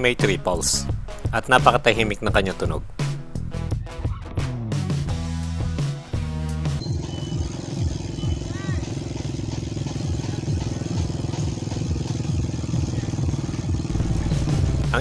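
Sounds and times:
bike freehub ticking: 0:06.8 - 0:13.9.

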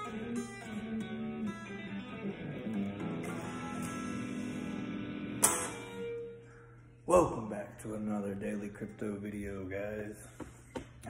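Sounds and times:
electric guitar strumming: 0:00.0 - 0:06.7.

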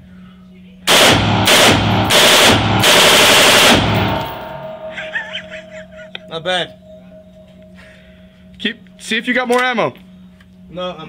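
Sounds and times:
automatic rifle bursts echoing: 0:00.9 - 0:04.9.

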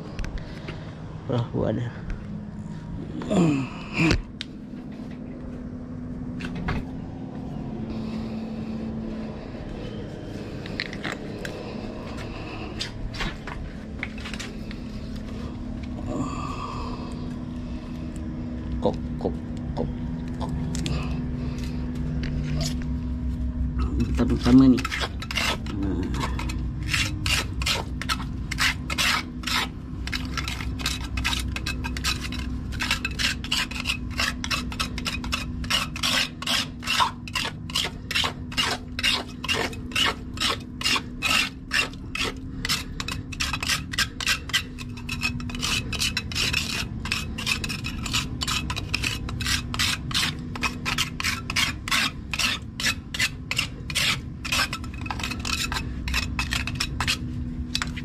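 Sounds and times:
hand tool scraping wet concrete: 0:23.8 - 0:58.0.

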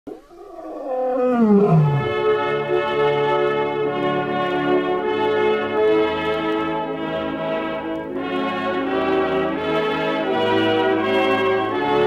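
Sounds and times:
lion roaring: 0:00.1 - 0:02.4.

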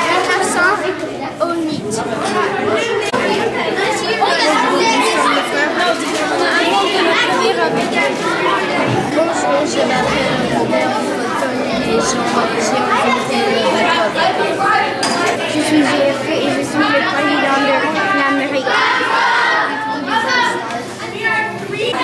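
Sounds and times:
crowd chatter with children: 0:00.0 - 0:22.0.

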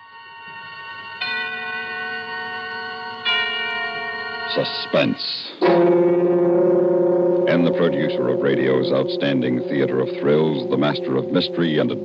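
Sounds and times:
radio drama theme music chords: 0:05.6 - 0:12.0.

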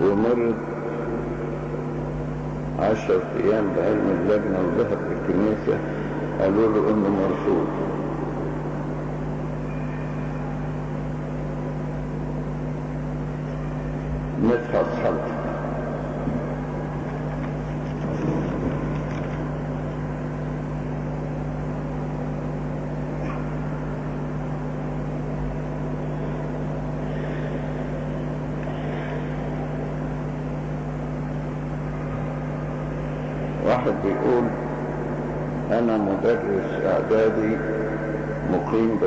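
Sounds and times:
faint murmur: 0:00.0 - 0:39.0
low electrical hum: 0:00.0 - 0:39.0
microphone hiss: 0:00.0 - 0:39.0.

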